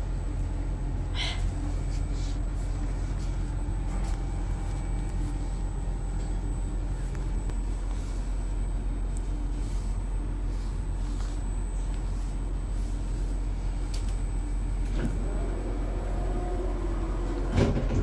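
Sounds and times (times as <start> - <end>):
train equipment low hum: 0.0 - 18.0.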